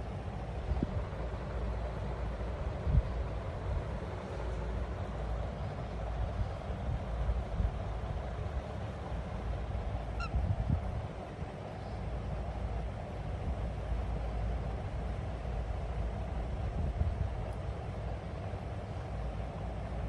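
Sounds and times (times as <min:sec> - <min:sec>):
steady low rumble: 0:00.0 - 0:20.0
cockatiel chirp: 0:10.2 - 0:10.4.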